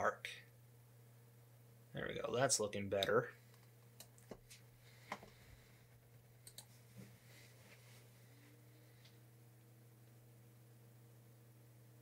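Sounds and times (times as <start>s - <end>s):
low steady hum: 0.0s - 12.0s
computer mouse clicks: 6.4s - 6.8s.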